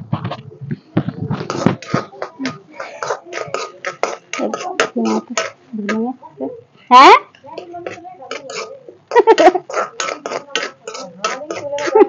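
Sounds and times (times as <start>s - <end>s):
voices talking: 0.7s - 12.0s
metal ladle scraping metal pan: 1.4s - 5.6s, 7.3s - 12.0s.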